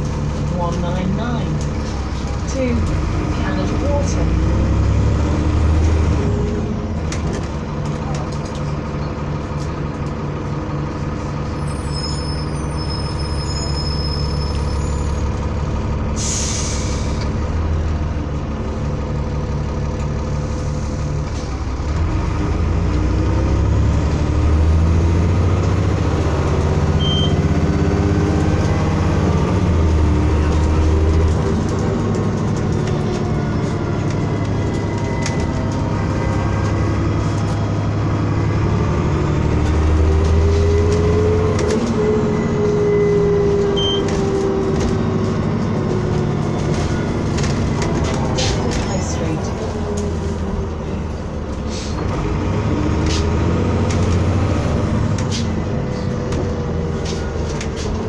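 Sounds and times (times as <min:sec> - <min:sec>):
bus diesel engine revving: 0:00.0 - 0:58.0
road rumble: 0:00.0 - 0:58.0.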